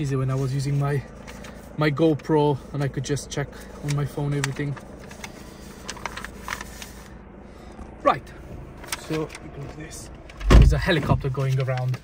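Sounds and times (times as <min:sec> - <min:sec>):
clicks and rustles: 0:11.2 - 0:12.0.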